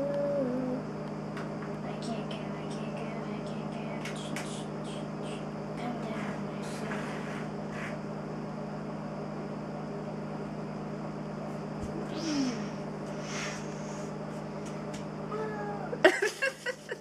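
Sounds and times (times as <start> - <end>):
steady low hum: 0.0 - 17.0
short faint hisses: 12.2 - 14.1.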